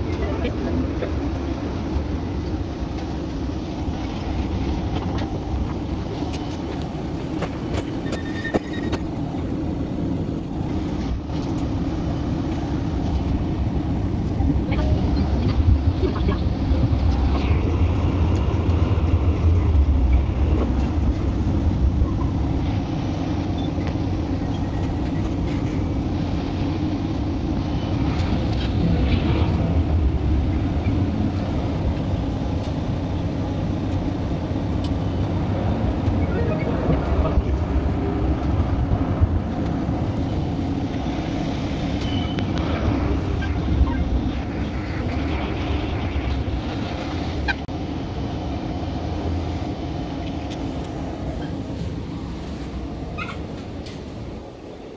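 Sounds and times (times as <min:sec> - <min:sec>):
tram wheels rumbling: 0:00.0 - 0:54.9.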